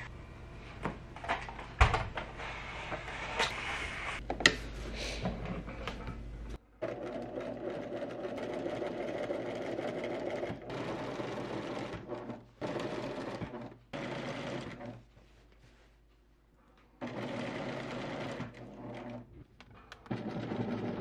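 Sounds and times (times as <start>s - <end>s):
sewing machine stitching: 6.8s - 15.0s, 17.0s - 19.3s, 20.0s - 21.0s.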